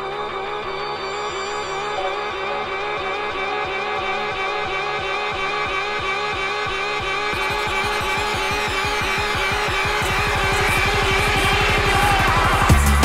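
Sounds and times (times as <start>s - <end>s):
rising synth sweep: 0.0s - 12.7s
drum and bass music: 0.0s - 13.0s.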